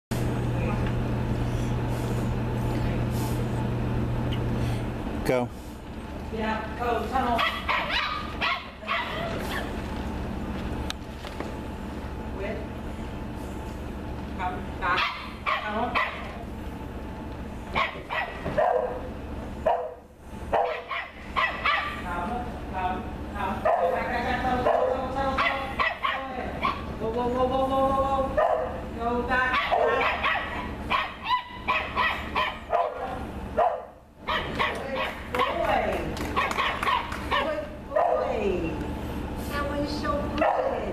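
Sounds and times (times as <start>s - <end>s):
dog barking: 7.4s - 9.7s, 14.9s - 16.4s, 17.7s - 22.0s, 23.6s - 26.9s, 28.4s - 28.8s, 29.5s - 38.4s, 40.4s - 40.9s.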